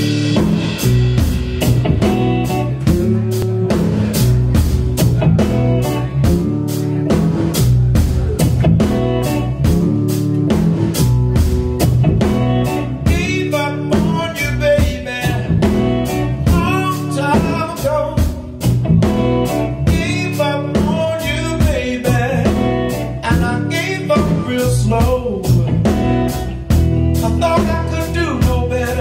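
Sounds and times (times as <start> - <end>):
blues band playing: 0.0 - 29.0
guitar lead with bending notes: 0.0 - 29.0.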